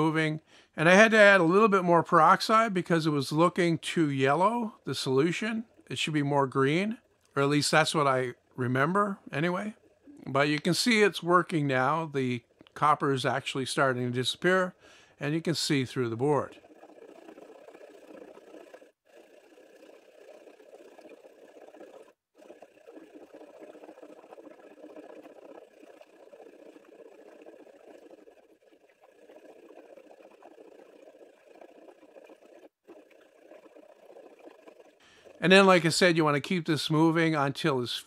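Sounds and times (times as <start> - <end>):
faint liquid sloshing in a tub: 0.0 - 37.7.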